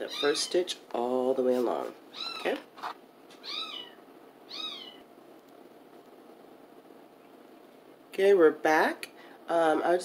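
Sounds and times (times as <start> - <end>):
cat meowing: 2.1 - 2.6, 3.4 - 5.0.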